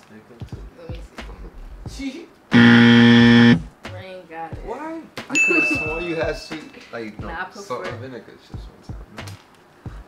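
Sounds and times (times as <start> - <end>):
harsh game show buzzer: 2.5 - 3.7.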